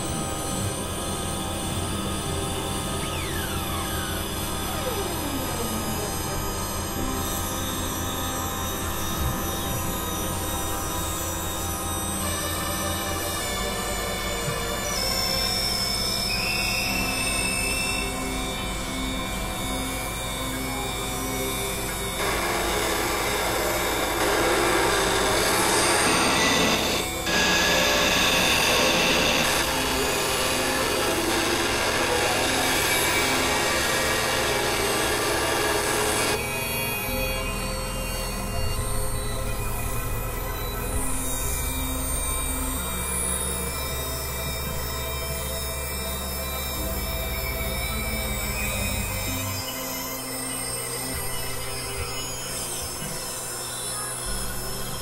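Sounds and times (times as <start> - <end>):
harsh grinding synthesizer noise: 0.0 - 55.0
low drone notes: 0.0 - 55.0
slow gliding high tones: 0.0 - 55.0.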